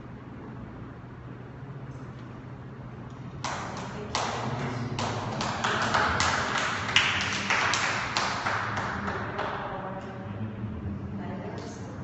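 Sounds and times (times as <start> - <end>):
group tapping rapidly: 3.4 - 9.9.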